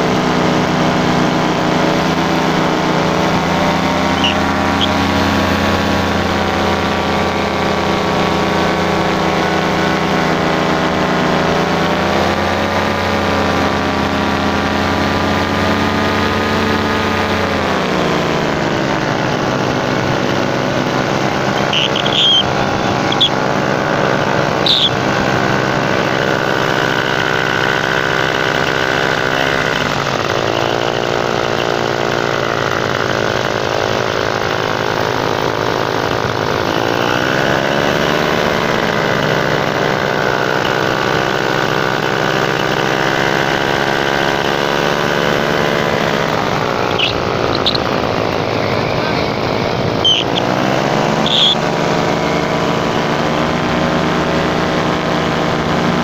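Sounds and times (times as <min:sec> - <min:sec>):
paramotor engine and propeller: 0:00.0 - 0:56.0.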